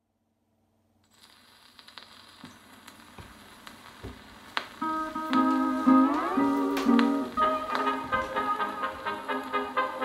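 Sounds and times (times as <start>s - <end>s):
record surface crackle and clicks: 1.0s - 9.7s
band playing held notes: 4.8s - 10.0s.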